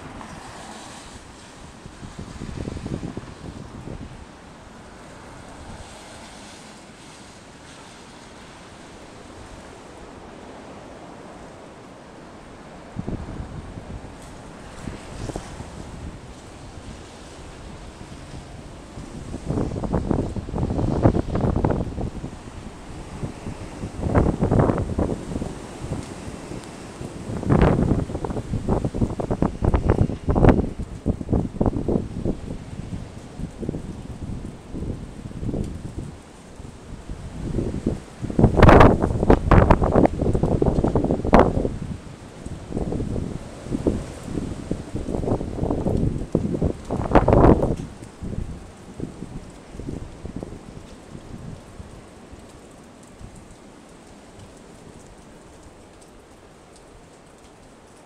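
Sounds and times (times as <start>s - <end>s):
storm wind buffeting microphone: 0.0s - 53.6s.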